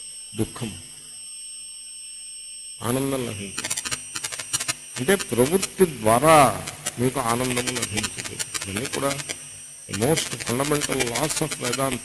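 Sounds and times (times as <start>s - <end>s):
man talking: 0.4s - 0.8s, 2.8s - 3.7s, 5.0s - 12.0s
high-pitched electronic whine: 2.8s - 12.0s.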